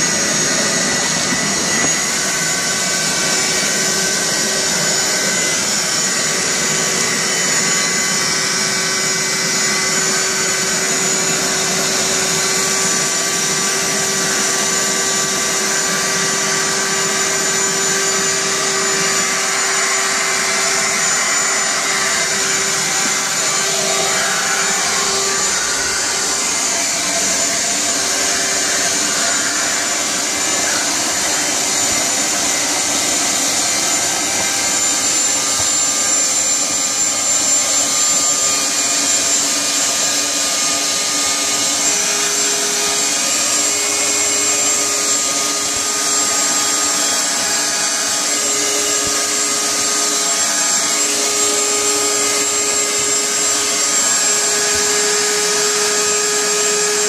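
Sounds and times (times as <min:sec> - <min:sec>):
shop vac running: 0:00.0 - 0:57.0
vacuum nozzle on floor: 0:00.0 - 0:57.0.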